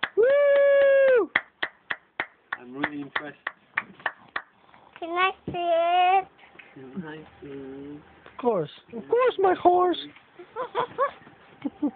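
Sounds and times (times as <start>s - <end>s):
person cheering woo: 0.0s - 1.4s
person clapping: 0.0s - 4.5s.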